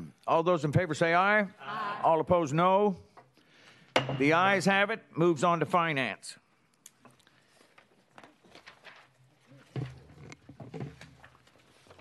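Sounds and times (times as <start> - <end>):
paper rustling and shuffling: 7.4 - 12.0.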